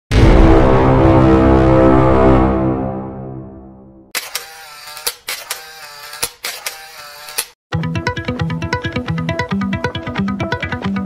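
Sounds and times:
camera shutter clicks: 0:04.2 - 0:07.6
guitar music: 0:07.7 - 0:11.0.

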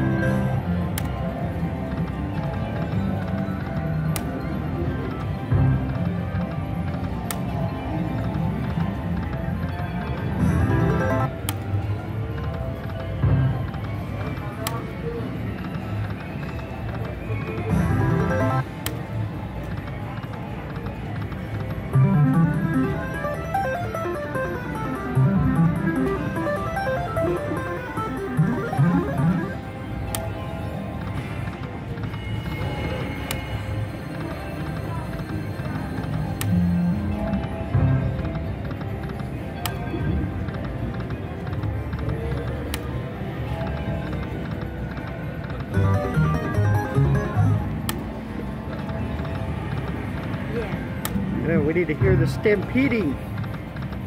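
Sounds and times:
casino background noise: 0:00.0 - 0:54.0
slot machine reel-spin sounds: 0:10.2 - 0:11.4, 0:17.6 - 0:18.8, 0:21.3 - 0:31.1, 0:44.3 - 0:48.4
rising and falling tones: 0:22.0 - 0:29.6.

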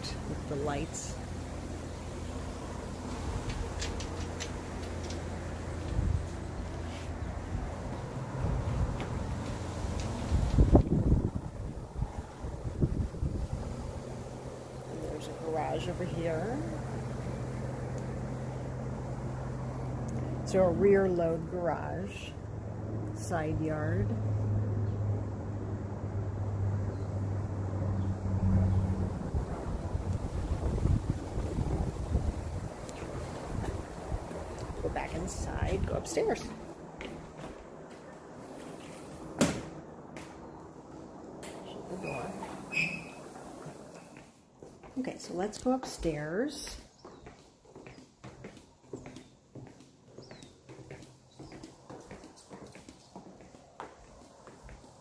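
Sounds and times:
steady low hum: 0:00.0 - 0:47.0
wind buffeting microphone: 0:03.2 - 0:17.2, 0:24.0 - 0:37.8
footsteps on hardwood floor: 0:36.4 - 0:40.5, 0:42.4 - 0:45.4, 0:46.6 - 0:55.0.

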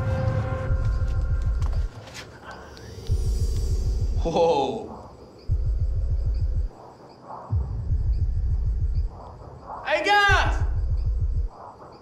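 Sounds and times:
rapid low bass pulsing: 0:05.5 - 0:06.7, 0:07.5 - 0:09.7, 0:10.6 - 0:11.5.

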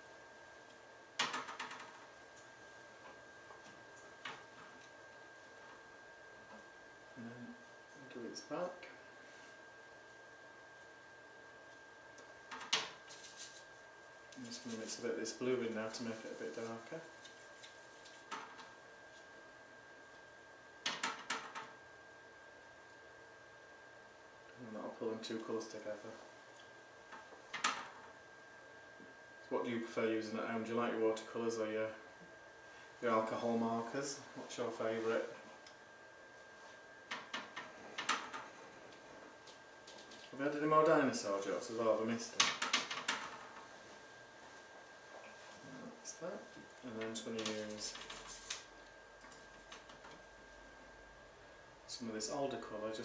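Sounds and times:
faint high-pitched hum: 0:00.0 - 0:53.0.

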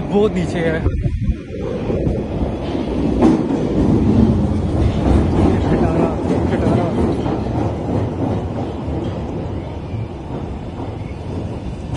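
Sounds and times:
train rail rumble: 0:00.0 - 0:11.9.

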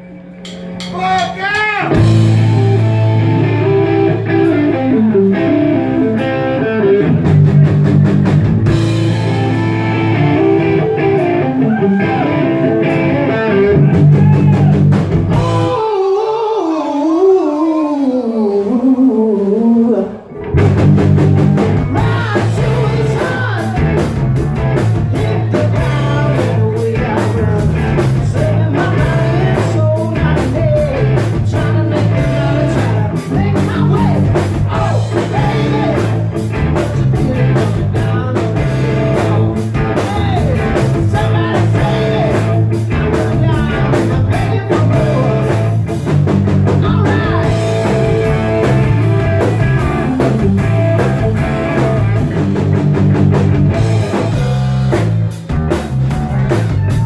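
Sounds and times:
distorted electric guitar: 0:00.0 - 0:15.8, 0:20.0 - 0:57.0
drum kit: 0:00.0 - 0:15.9, 0:20.3 - 0:57.0
electric bass: 0:00.0 - 0:15.9, 0:18.7 - 0:57.0.

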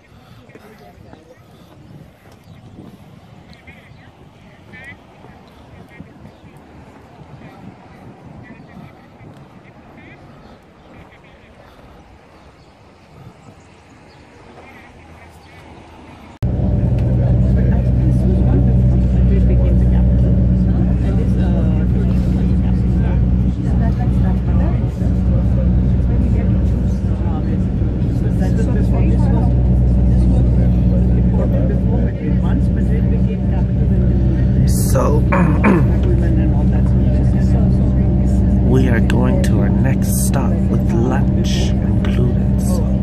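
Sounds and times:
faint outdoor ambience: 0:00.0 - 0:43.0
vehicle engine and road noise: 0:00.0 - 0:43.0.

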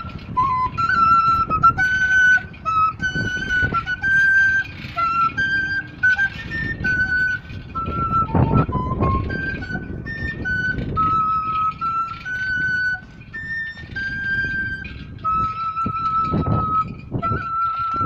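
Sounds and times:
flute melody: 0:00.0 - 0:18.0.

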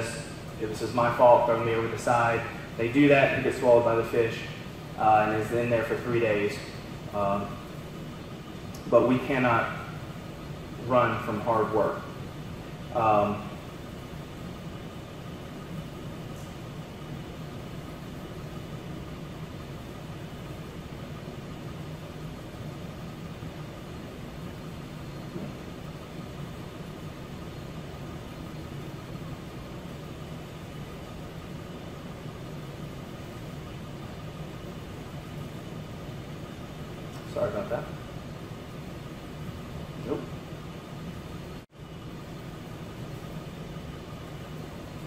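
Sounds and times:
low mechanical hum: 0:00.0 - 0:45.0.

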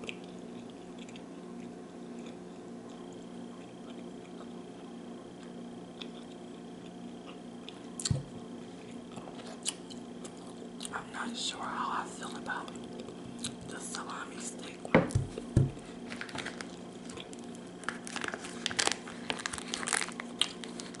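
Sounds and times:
person chewing: 0:00.0 - 0:11.0, 0:12.2 - 0:14.0, 0:14.7 - 0:21.0
low electrical hum: 0:00.0 - 0:21.0.

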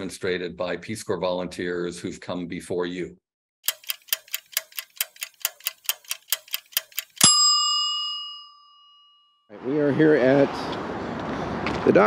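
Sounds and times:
clock ticking fast: 0:03.6 - 0:07.4
loud bell ding: 0:07.2 - 0:09.5.

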